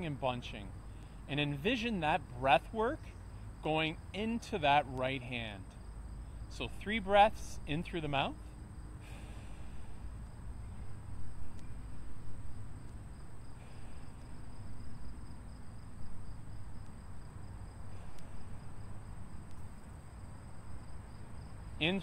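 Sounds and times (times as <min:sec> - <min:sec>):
insects trilling: 0:00.0 - 0:22.0.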